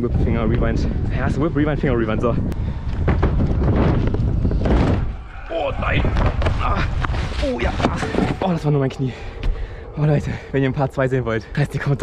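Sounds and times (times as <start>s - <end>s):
wind rushing over microphone: 0.0s - 12.0s
scooter wheels rumbling on ramp: 2.8s - 5.2s.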